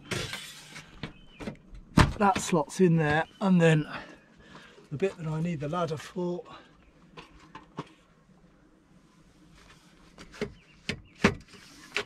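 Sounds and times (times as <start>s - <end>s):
metal rafter scraping: 0.0s - 1.0s.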